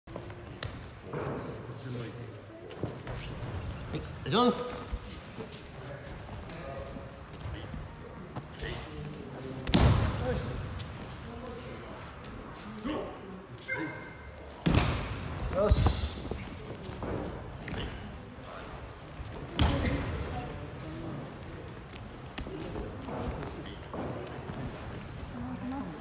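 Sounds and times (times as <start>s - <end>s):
voices in a hall: 0.1s - 26.0s.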